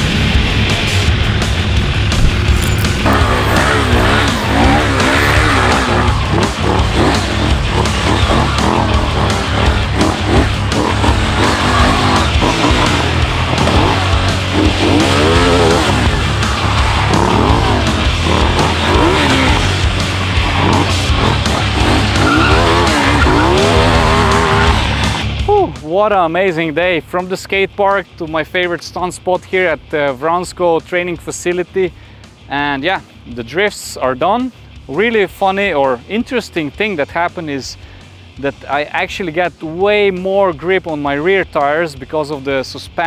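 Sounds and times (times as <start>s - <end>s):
motorcycle engine revving: 0.0s - 25.5s
hard rock music: 0.0s - 43.0s
tyre squealing and skidding: 2.5s - 25.4s.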